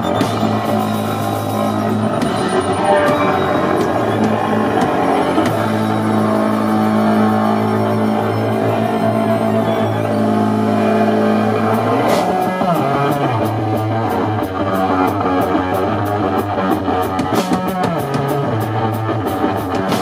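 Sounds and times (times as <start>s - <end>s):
droning electric guitar: 0.0s - 20.0s
drum kit beat: 0.0s - 20.0s.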